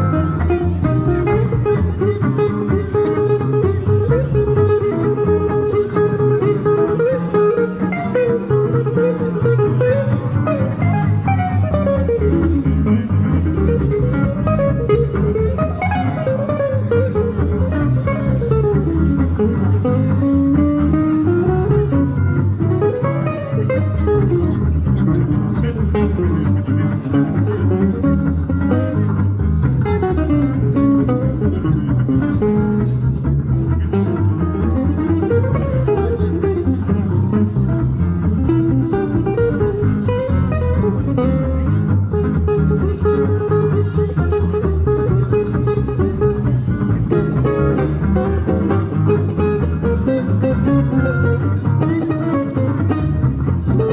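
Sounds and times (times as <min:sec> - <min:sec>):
acoustic guitar melodic runs: 0:00.0 - 0:53.9
double bass: 0:00.0 - 0:53.9
rhythm guitar: 0:00.0 - 0:53.9.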